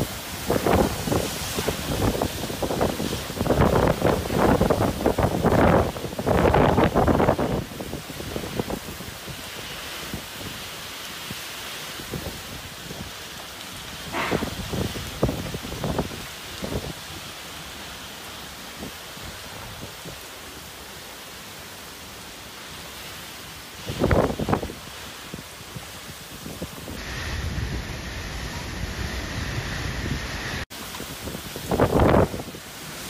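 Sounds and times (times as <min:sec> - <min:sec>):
wind gusts buffeting microphone: 0:00.0 - 0:11.4, 0:13.9 - 0:17.3, 0:23.8 - 0:33.0
wind and heavy rain: 0:00.0 - 0:33.0.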